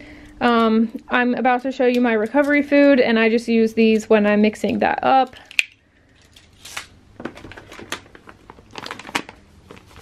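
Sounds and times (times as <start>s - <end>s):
packets rustling and crinkling: 6.1s - 10.0s
clicks and knocks in plastic box: 7.2s - 9.8s.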